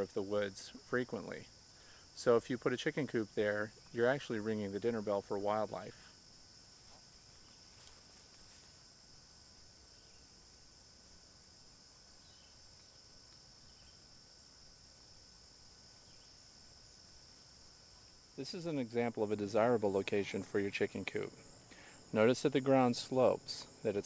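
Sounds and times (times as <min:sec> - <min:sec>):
high-pitched insect chorus: 0:00.0 - 0:24.0
faint clicks and chirps: 0:12.2 - 0:14.0.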